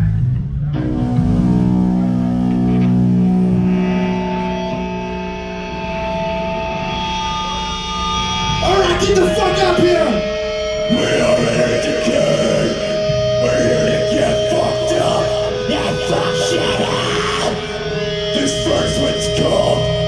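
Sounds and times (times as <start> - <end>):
electric guitar and bass chords: 0.0 - 20.0
voice shouting over pa: 10.9 - 20.0.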